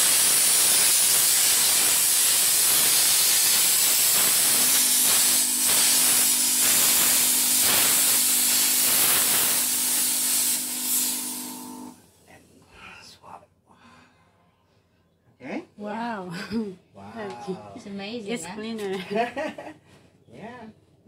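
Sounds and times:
steam cleaner unit humming: 0:00.0 - 0:12.0
steam hissing from nozzle: 0:00.0 - 0:12.0.

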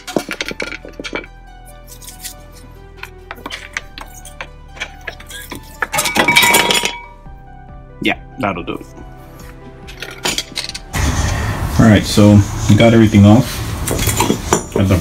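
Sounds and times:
metal rattling and scraping: 0:00.0 - 0:07.1, 0:13.8 - 0:14.8
screwdriver clinking on metal: 0:00.0 - 0:07.1
background music: 0:00.0 - 0:15.0.

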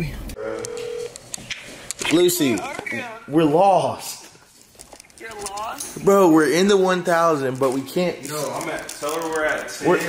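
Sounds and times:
phone ringback tone: 0:00.4 - 0:01.2.

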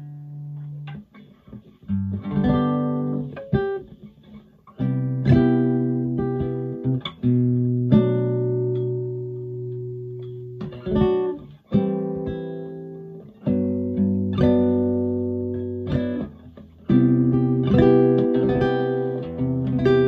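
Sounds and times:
classical guitar strummed chords: 0:00.0 - 0:20.0.

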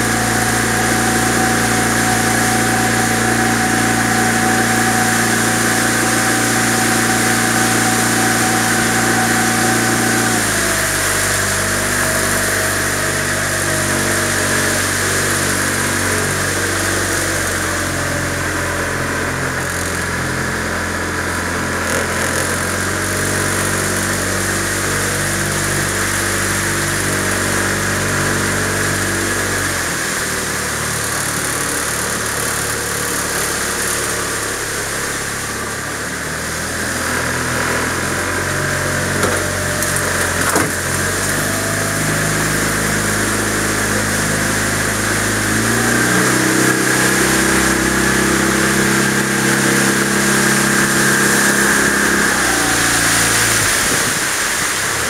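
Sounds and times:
boat motor running: 0:00.0 - 0:55.0.

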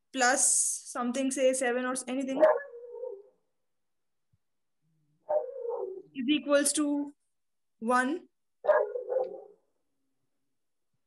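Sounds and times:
dog barking: 0:02.3 - 0:03.4, 0:05.2 - 0:06.2, 0:08.6 - 0:09.7.

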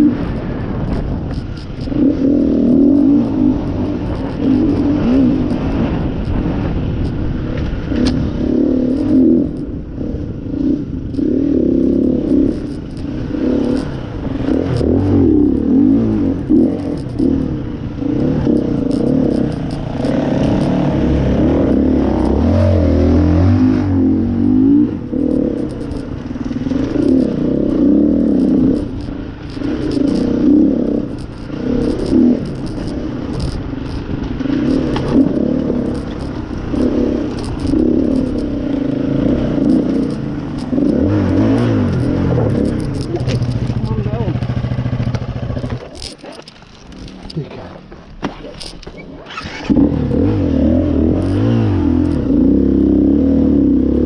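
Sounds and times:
motorcycle clattering over rough ground: 0:00.0 - 0:54.0
motorcycle engine revving: 0:00.0 - 0:54.0.

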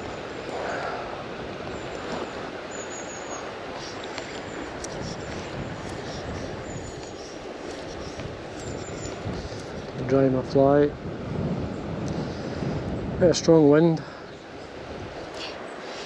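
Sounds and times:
river water rushing: 0:00.0 - 0:10.1, 0:13.6 - 0:16.0
wind buffeting microphone: 0:00.0 - 0:16.0.

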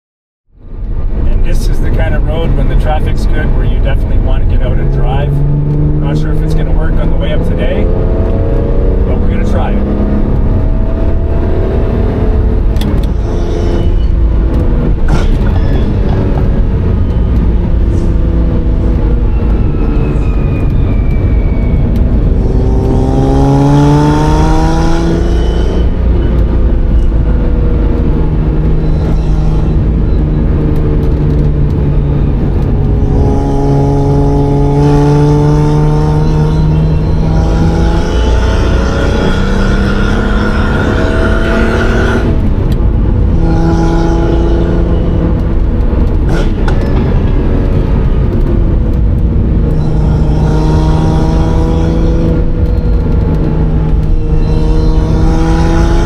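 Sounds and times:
road noise: 0:00.5 - 0:56.0
car engine revving: 0:00.6 - 0:56.0.

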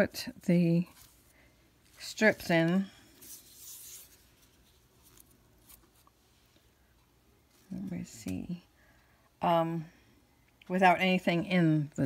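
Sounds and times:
paper strips rustling: 0:00.8 - 0:06.2.

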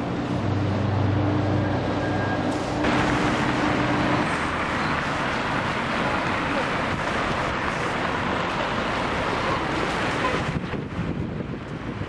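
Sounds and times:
city street traffic: 0:00.0 - 0:12.0
low engine hum: 0:00.0 - 0:12.0.

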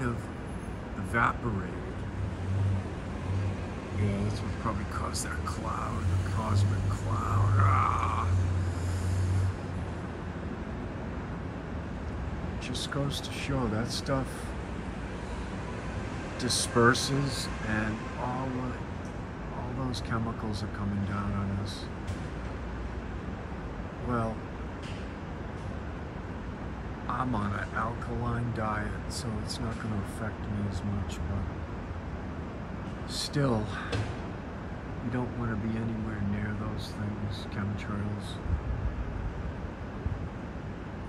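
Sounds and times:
road vehicle rumble: 0:00.0 - 0:41.0.

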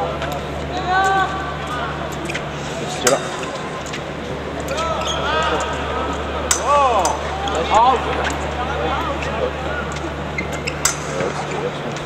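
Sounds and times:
hall background hum: 0:00.0 - 0:12.0.

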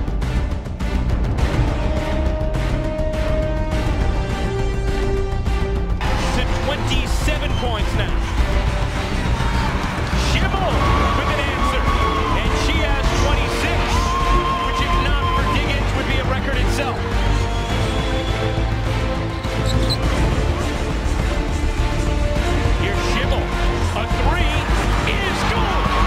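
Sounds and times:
background music: 0:00.0 - 0:26.0
sneakers squeaking on court: 0:19.4 - 0:20.1.

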